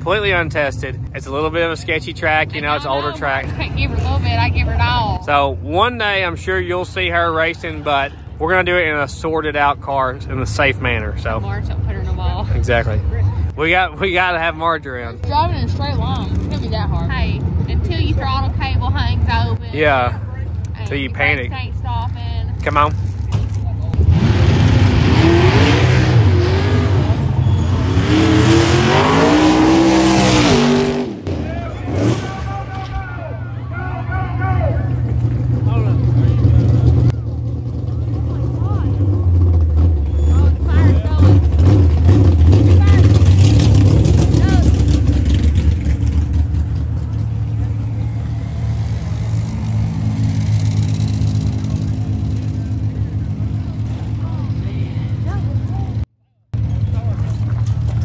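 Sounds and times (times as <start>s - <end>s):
race car engine revving: 22.6s - 32.9s, 34.5s - 58.0s.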